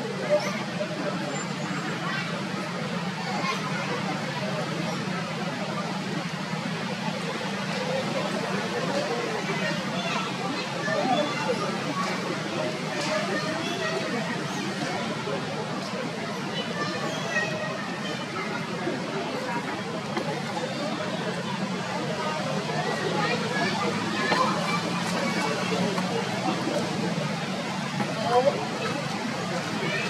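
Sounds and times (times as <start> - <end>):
people talking in background: 0.0 - 30.0.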